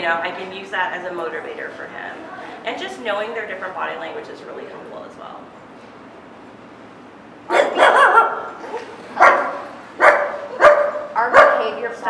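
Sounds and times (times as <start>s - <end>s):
small dog barking: 7.5s - 11.8s.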